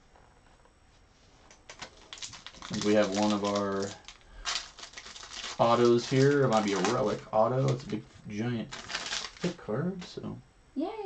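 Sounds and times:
trading cards clicking and rustling: 0:01.5 - 0:08.0, 0:08.6 - 0:09.6
man speaking: 0:02.7 - 0:04.0, 0:05.6 - 0:08.8, 0:09.4 - 0:10.4.

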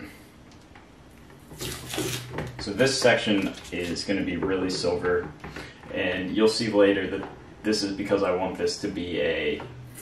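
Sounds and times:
peeling scratchy rustling: 0:01.4 - 0:02.4, 0:03.0 - 0:04.1.

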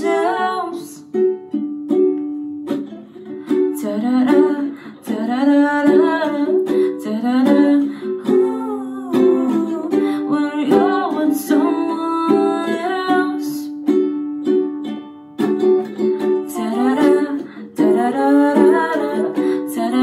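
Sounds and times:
woman singing: 0:00.0 - 0:01.2, 0:03.5 - 0:13.8, 0:16.2 - 0:20.0
ukulele strumming chords: 0:00.0 - 0:20.0.

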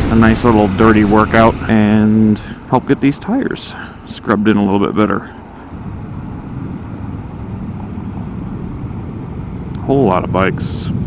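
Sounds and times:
motorcycle engine rumble: 0:00.0 - 0:11.0
wind noise: 0:00.0 - 0:11.0.

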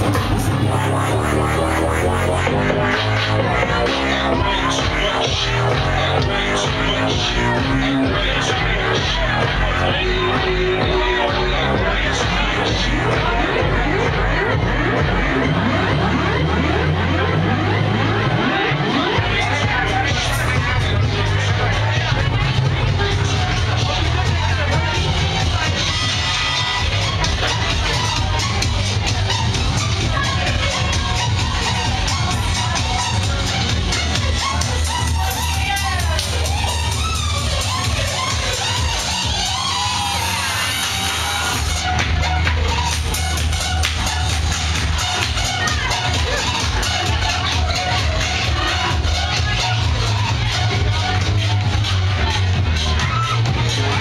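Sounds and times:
crowd chatter: 0:00.0 - 0:54.0
electronic dance music: 0:00.0 - 0:54.0.

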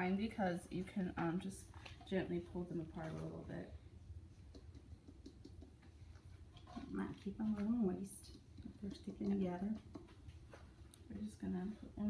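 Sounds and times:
low room hum: 0:00.0 - 0:12.0
faint soft ticks and taps: 0:04.5 - 0:12.0.

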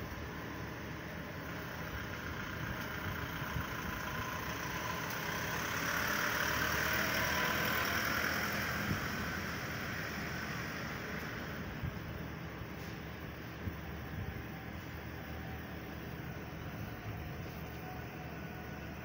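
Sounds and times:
delivery truck driving past: 0:00.0 - 0:19.0
steady engine hum: 0:00.0 - 0:19.0.

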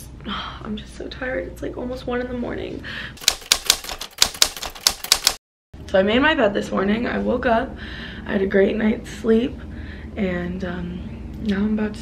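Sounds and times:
typewriter keys clacking: 0:03.2 - 0:05.4.

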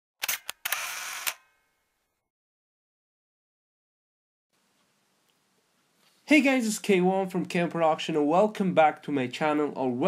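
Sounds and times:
camera shutter clicks: 0:00.2 - 0:01.5
film advance whirr: 0:00.2 - 0:01.5.

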